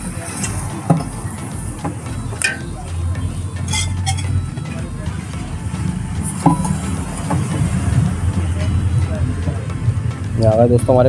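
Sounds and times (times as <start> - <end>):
faint background voices: 0.0 - 11.0
road traffic rumble: 0.0 - 11.0.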